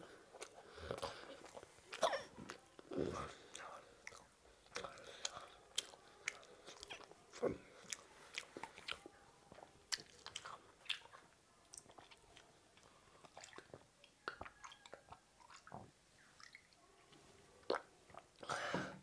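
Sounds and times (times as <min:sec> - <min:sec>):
child chewing wet rice: 0:00.0 - 0:18.5
lip smacks and mouth clicks: 0:07.8 - 0:12.5, 0:13.2 - 0:15.8, 0:16.4 - 0:16.8.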